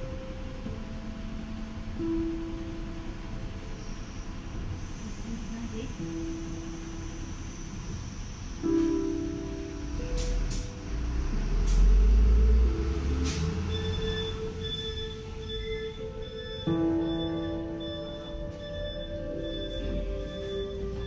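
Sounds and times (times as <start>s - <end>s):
deep rumble: 0.0s - 21.0s
music of long held notes: 0.0s - 21.0s.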